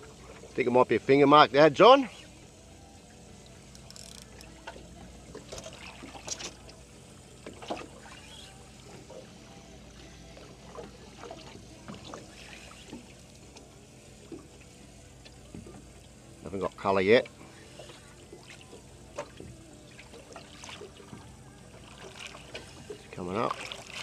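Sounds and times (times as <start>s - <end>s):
water lapping against boat hull: 0.0s - 1.2s, 3.4s - 24.0s.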